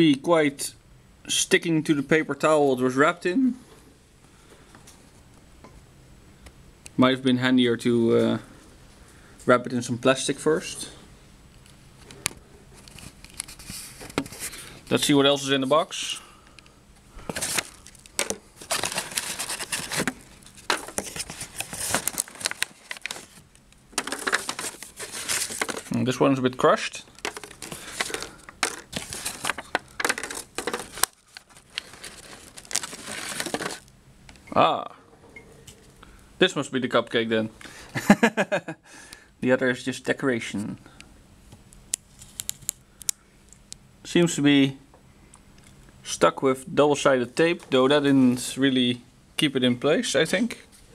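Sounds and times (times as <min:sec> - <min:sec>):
paper and card boxes rustling: 0:17.3 - 0:33.8.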